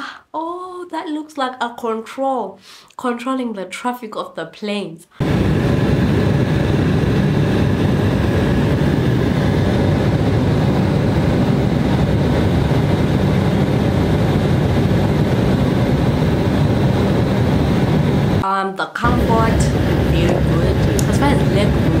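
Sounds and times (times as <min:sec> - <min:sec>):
airliner engine and cabin noise: 0:05.2 - 0:18.4, 0:19.0 - 0:22.0.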